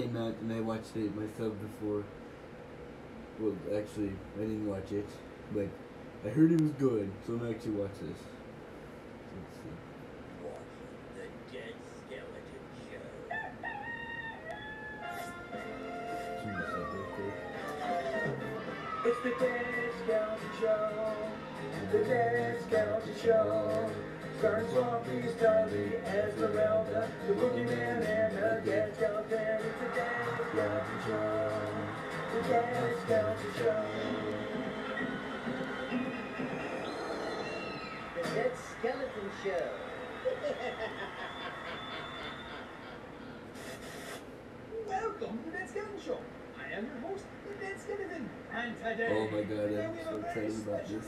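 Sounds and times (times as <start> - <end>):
rooster crow through tv speaker: 13.3 - 15.4
music with held tones: 15.0 - 35.1.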